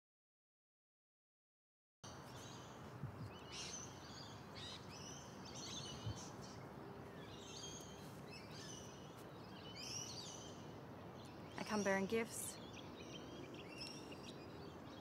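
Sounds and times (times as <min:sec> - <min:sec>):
birds chirping: 0:02.1 - 0:15.0
outdoor background hiss: 0:02.1 - 0:15.0.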